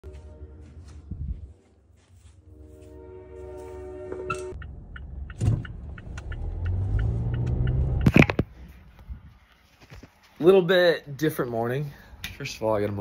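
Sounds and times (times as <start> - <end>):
car engine from inside cabin: 4.6 - 8.4.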